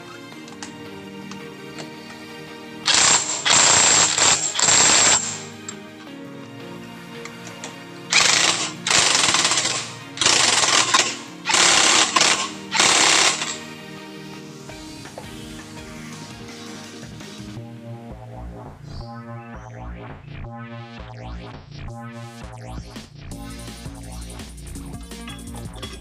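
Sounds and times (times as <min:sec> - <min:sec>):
background music: 0:00.0 - 0:26.0
impact wrench hammering: 0:02.9 - 0:05.6, 0:08.1 - 0:13.6.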